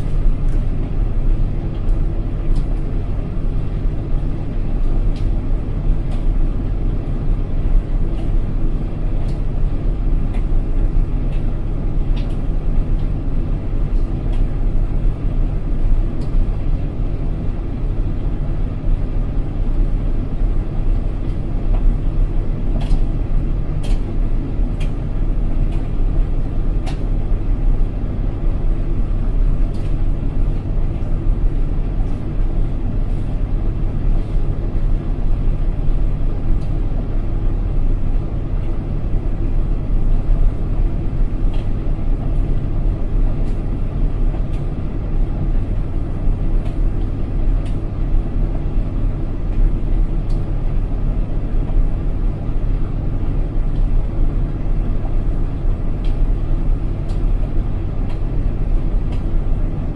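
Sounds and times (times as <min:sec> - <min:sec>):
washing machine spinning: 0:00.0 - 0:59.9.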